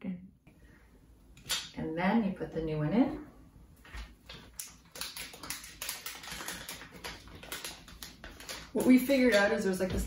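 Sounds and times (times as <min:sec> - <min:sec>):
plastic packaging crinkling: 0:04.3 - 0:10.0.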